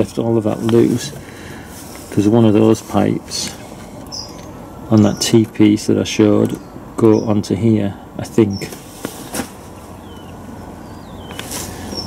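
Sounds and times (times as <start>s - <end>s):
low background hum: 0.0s - 12.0s
faint bird chirps: 9.9s - 12.0s.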